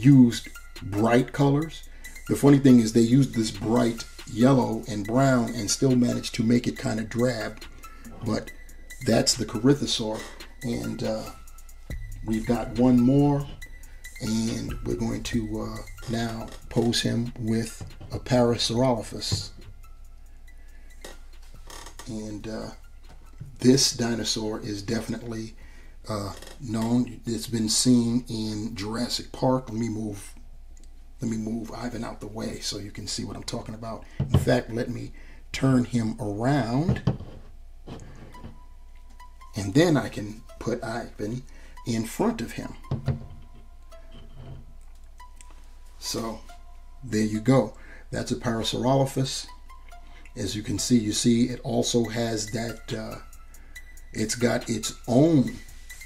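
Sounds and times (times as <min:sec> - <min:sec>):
faint steady tones: 0:00.0 - 0:56.0.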